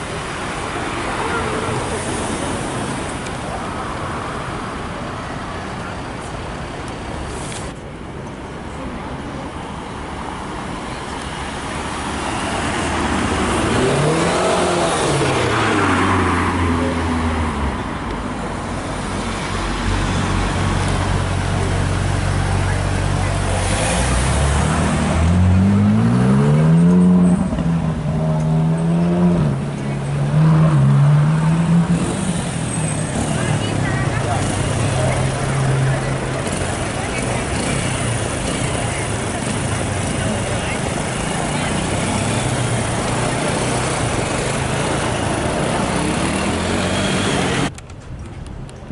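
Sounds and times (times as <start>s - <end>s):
car engine revving: 12.5s - 17.1s, 20.1s - 47.7s.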